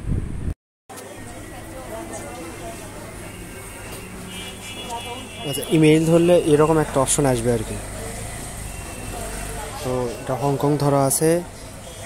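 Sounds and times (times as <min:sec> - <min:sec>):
man speaking: 0:05.5 - 0:07.9.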